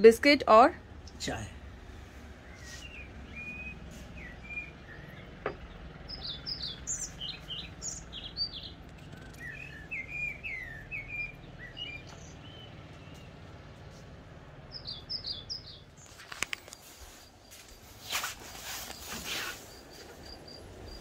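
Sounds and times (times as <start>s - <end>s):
low outdoor rumble: 0.0s - 21.0s
songbirds chirping and whistling: 1.0s - 21.0s.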